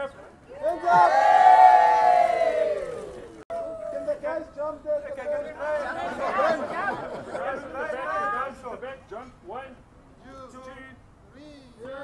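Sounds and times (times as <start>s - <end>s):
group of people cheering: 0.5s - 4.2s.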